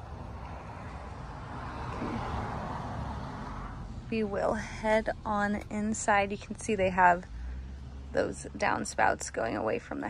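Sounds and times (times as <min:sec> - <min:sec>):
car passing: 0:00.0 - 0:10.0
low outdoor rumble: 0:00.0 - 0:10.0.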